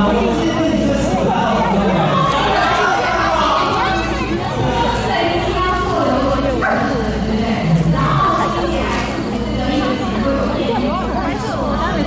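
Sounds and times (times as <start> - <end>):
crowd chattering: 0.0 - 12.0
small dog barking: 6.6 - 7.0.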